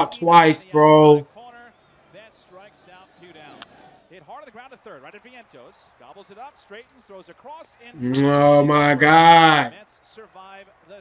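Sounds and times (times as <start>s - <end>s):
play-by-play commentary: 0.0s - 11.0s.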